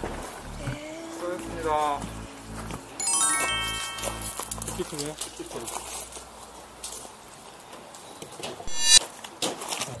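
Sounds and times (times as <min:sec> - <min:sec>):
buzzy sound effect: 0:08.7 - 0:09.0.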